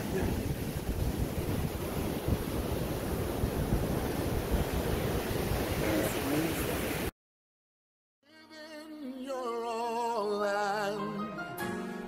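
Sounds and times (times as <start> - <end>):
surf breaking on beach: 0.0 - 7.1
wind buffeting microphone: 0.0 - 7.1.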